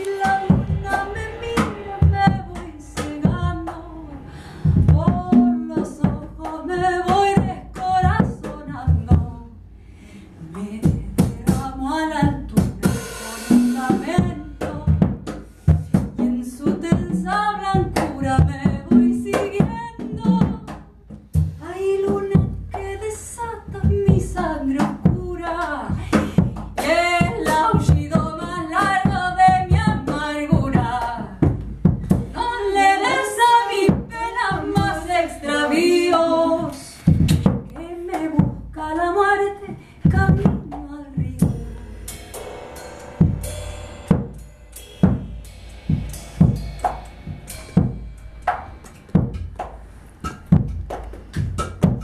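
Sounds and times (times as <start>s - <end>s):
drum and cymbal strikes: 0.0s - 3.8s, 10.9s - 22.9s, 36.7s - 38.7s, 40.1s - 52.0s
woman singing: 0.0s - 9.6s, 10.4s - 15.2s, 16.2s - 21.0s, 21.6s - 42.2s.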